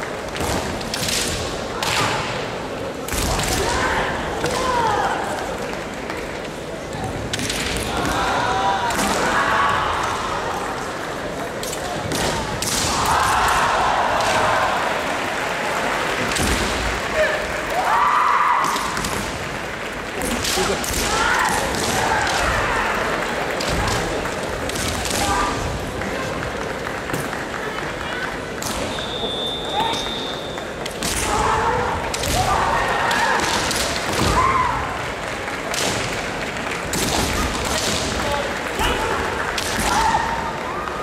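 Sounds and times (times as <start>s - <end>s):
people shouting: 3.2s - 5.5s, 7.8s - 10.9s, 12.1s - 15.2s, 17.1s - 19.2s, 20.2s - 24.2s, 24.9s - 25.7s, 31.0s - 35.0s, 37.2s - 41.0s
bamboo swords cracking: 38.8s - 40.2s.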